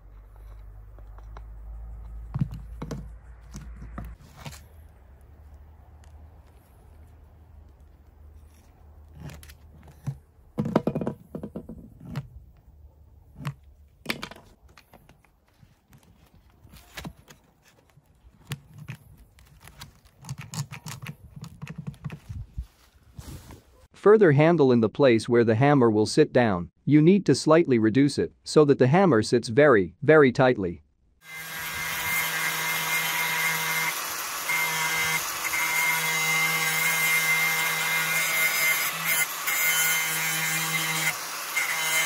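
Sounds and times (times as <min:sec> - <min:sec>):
tools knocking on wooden workbench: 0:02.3 - 0:03.1, 0:10.0 - 0:11.9.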